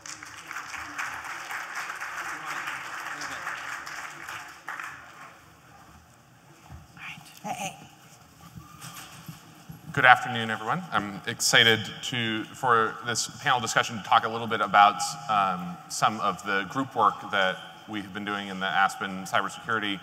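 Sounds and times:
audience applauding: 0.0 - 5.5
faint knocks and rustles: 5.8 - 10.1.

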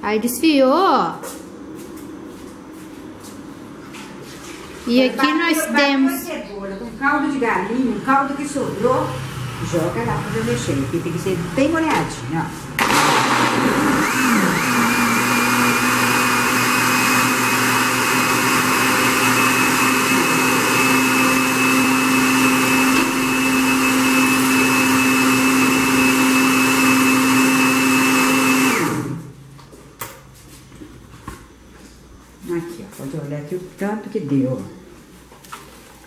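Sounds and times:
blender motor running: 12.8 - 29.3.

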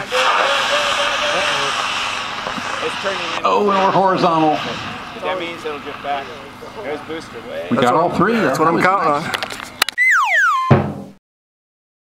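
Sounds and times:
steady hiss: 0.0 - 7.7.

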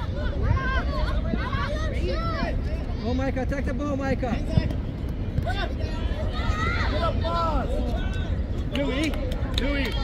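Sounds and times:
low outdoor rumble: 0.0 - 10.0
children shouting: 6.0 - 7.7.

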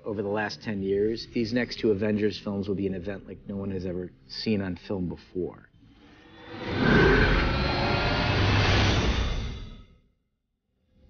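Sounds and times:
deep cinematic rumble: 6.4 - 9.8.

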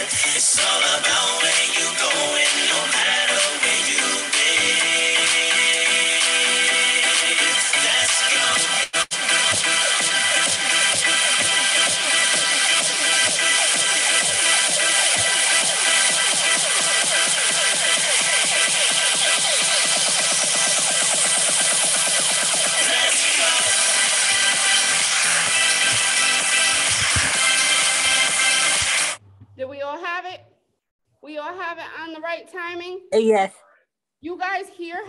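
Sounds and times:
electronic hip hop track with vocals: 0.0 - 29.2
woman speaking: 29.6 - 30.4, 31.3 - 33.6.

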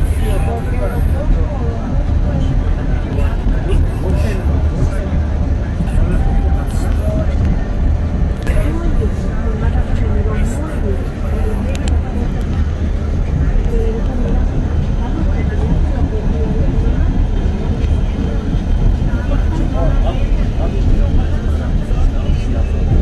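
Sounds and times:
murmur of voices: 0.0 - 23.0
train rumbling: 0.0 - 23.0.

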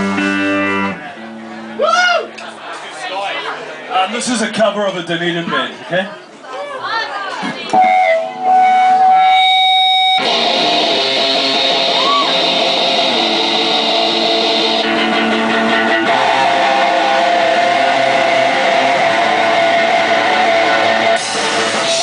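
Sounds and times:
electric guitar through amplifier: 0.0 - 1.8, 7.7 - 22.0.

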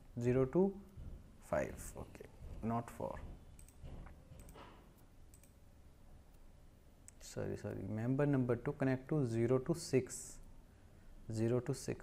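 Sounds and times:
computer mouse clicks: 3.5 - 5.6.

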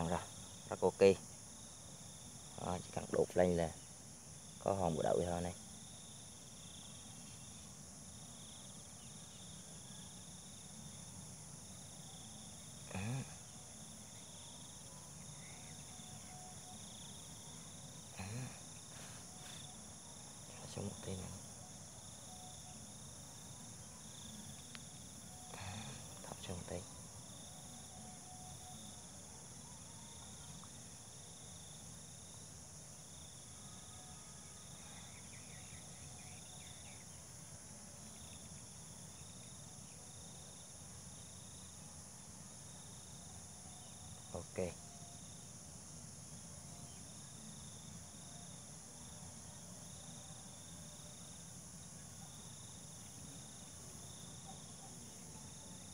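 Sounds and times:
crickets chirping: 0.0 - 55.9.

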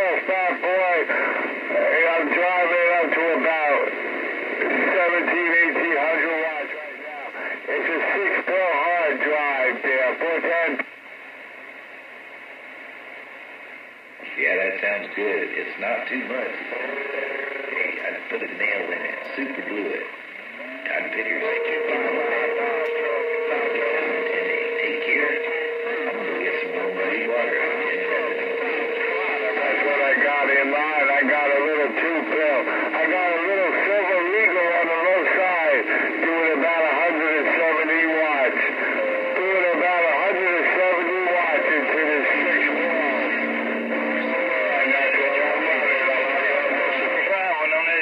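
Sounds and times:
garbled radio voices: 0.0 - 10.8, 14.2 - 48.0
whistling radio tones: 16.1 - 48.0.

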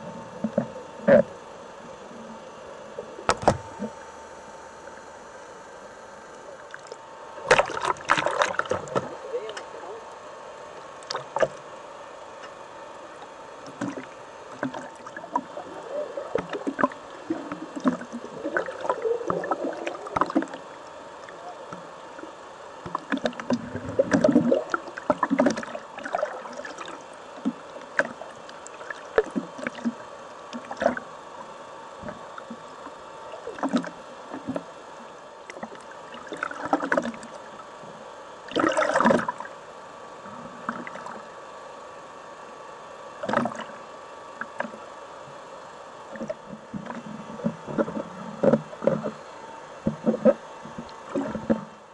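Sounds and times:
faint steady hum: 0.0 - 51.9
underwater rushing and bubbling: 0.0 - 51.9.

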